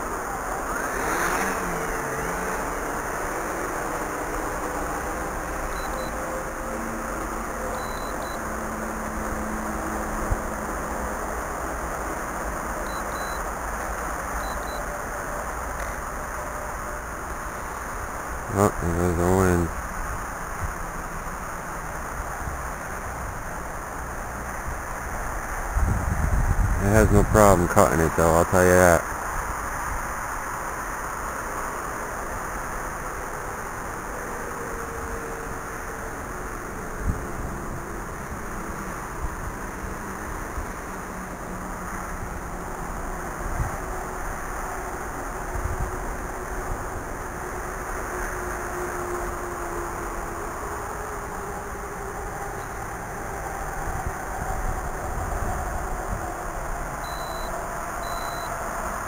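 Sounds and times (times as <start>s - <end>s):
drone propellers whining: 0.0s - 59.0s
wind noise on microphone: 24.3s - 27.8s, 36.9s - 44.6s, 45.2s - 47.5s, 52.3s - 58.4s.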